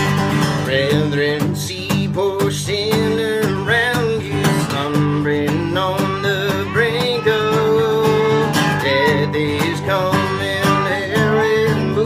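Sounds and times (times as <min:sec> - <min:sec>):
acoustic guitar strumming: 0:00.0 - 0:12.0
man singing a hymn: 0:00.4 - 0:12.0
harmonica: 0:03.0 - 0:12.0.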